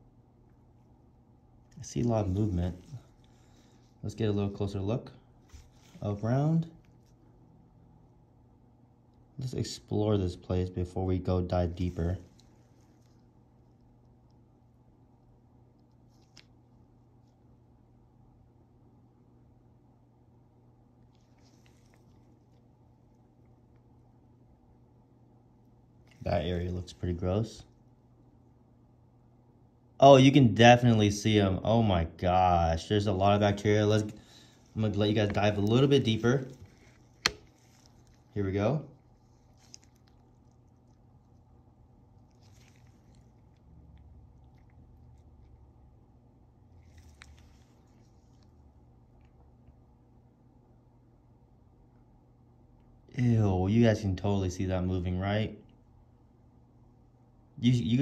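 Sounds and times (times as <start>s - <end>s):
steady low hum: 0.0s - 58.0s
quiet rustles: 1.6s - 7.4s, 11.5s - 14.4s, 21.0s - 24.0s, 33.0s - 45.6s, 46.6s - 49.8s
soft handling ticks: 21.0s - 24.0s, 33.0s - 45.8s, 46.7s - 49.8s.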